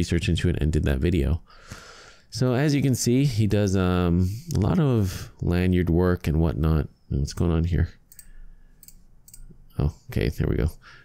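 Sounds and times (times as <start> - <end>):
computer mouse clicks: 8.1 - 9.6.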